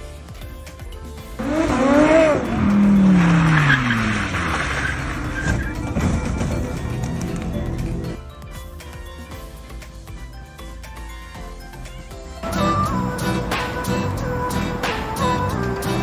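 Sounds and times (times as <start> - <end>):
sports car engine revving: 1.4 - 8.1.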